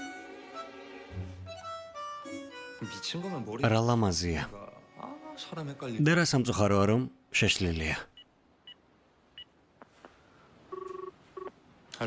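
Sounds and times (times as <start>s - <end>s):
telephone keypad beeps: 10.7s - 11.5s
two-pitch telephone tone: 10.7s - 11.5s.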